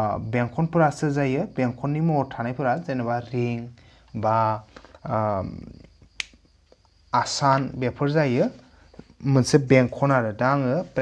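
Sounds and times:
sharp click: 0:06.2 - 0:06.4.

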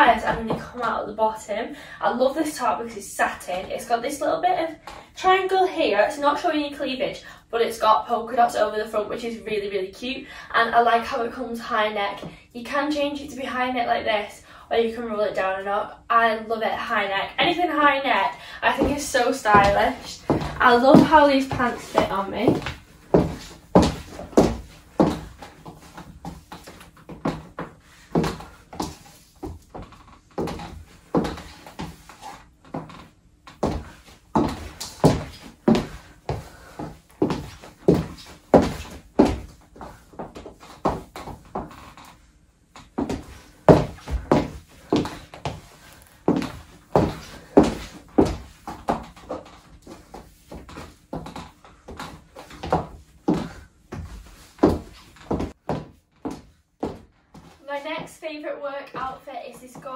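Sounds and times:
high heels on wooden floor: 0:18.6 - 0:42.2, 0:42.8 - 0:58.2.

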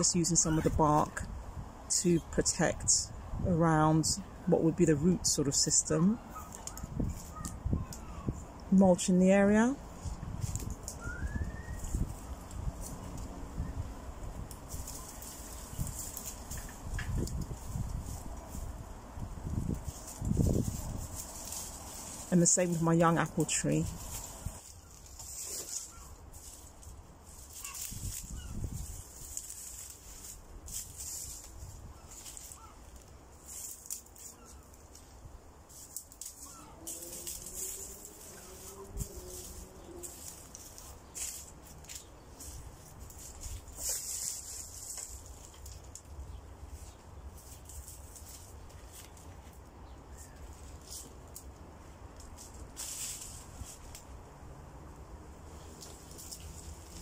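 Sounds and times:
wind rumble on microphone: 0:00.0 - 0:22.3, 0:26.4 - 0:32.7, 0:36.3 - 0:48.5
dry leaves rustling and crackling: 0:00.0 - 0:57.0.

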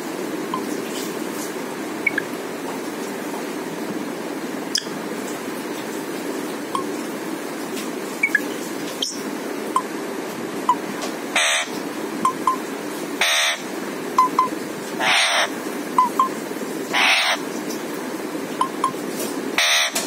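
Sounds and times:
parakeet squawking: 0:11.3 - 0:11.8, 0:13.2 - 0:13.7, 0:15.0 - 0:16.2, 0:16.9 - 0:17.4, 0:19.6 - 0:20.0.

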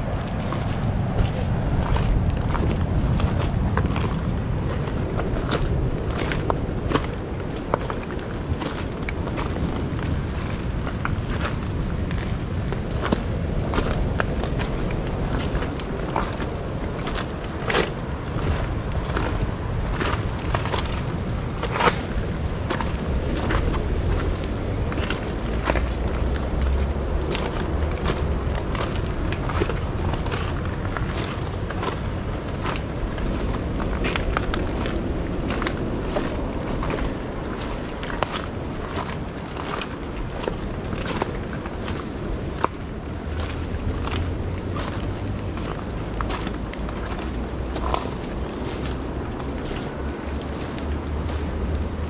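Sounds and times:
footsteps crunching on gravel: 0:00.0 - 0:52.0.

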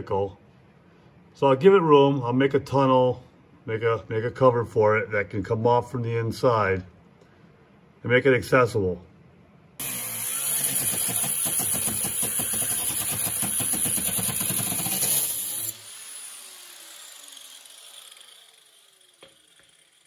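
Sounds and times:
angle grinder cutting steel: 0:09.8 - 0:20.0.

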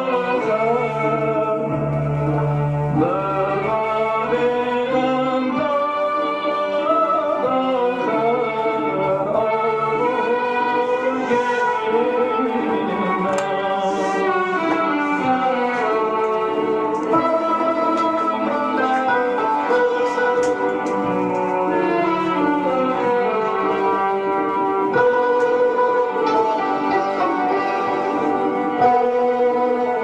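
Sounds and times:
man singing classical vocals: 0:00.0 - 0:30.0.

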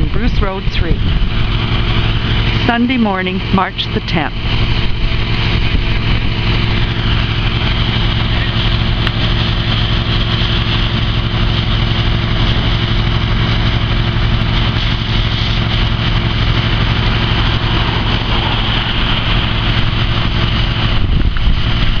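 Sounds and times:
fire hose spraying water: 0:00.0 - 0:22.0
fire truck engine droning: 0:00.0 - 0:22.0.

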